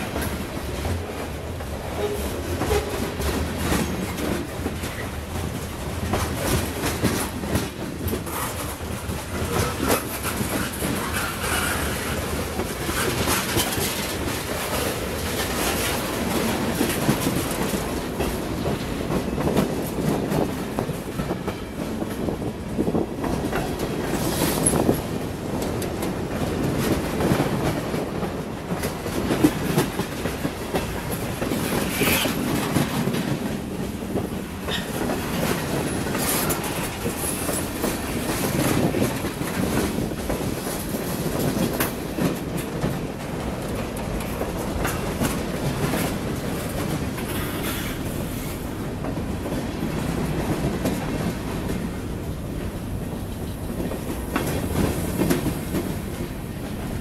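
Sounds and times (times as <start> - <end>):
train wheels rumbling on rails: 0.0 - 57.0
wheels clacking over rail joints: 0.0 - 57.0.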